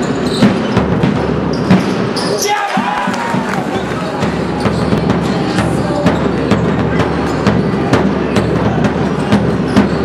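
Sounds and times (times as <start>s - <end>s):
basketball bouncing on court: 0.0s - 2.4s
murmur of crowd voices: 0.0s - 10.0s.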